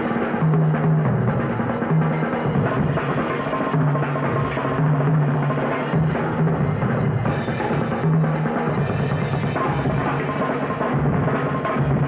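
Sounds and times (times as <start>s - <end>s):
jazz drum kits playing fast: 0.0s - 12.0s.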